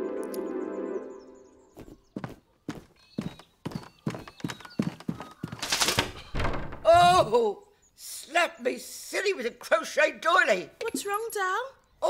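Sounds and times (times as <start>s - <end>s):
held music chord: 0.0s - 1.7s
cartoon footsteps tapping: 1.8s - 6.1s.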